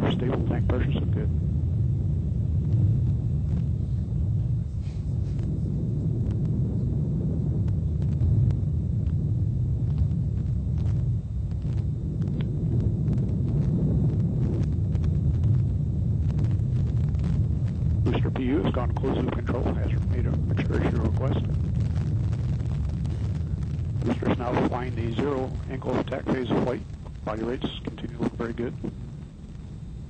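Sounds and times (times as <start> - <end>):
rocket engine deep rumble: 0.0 - 30.0
sharp crackles: 0.0 - 30.0.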